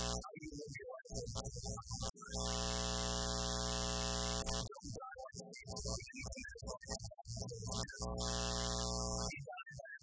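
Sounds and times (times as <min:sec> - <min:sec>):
electrical buzz with hiss: 0:00.0 - 0:00.2, 0:02.3 - 0:04.7, 0:08.1 - 0:09.3.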